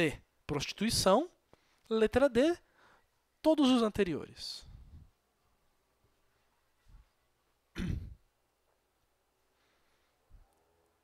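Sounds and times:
man clearing his throat: 7.7s - 8.3s.

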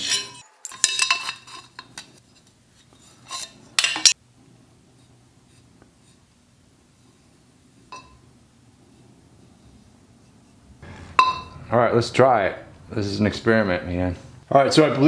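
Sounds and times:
light ringing metal clink: 7.9s - 8.3s, 11.2s - 11.6s.

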